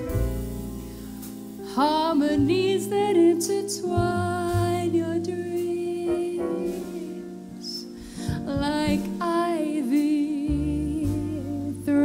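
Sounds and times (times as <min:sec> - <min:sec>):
double bass notes: 0:00.0 - 0:12.0
piano: 0:00.0 - 0:12.0
woman singing wordless melody: 0:01.7 - 0:12.0.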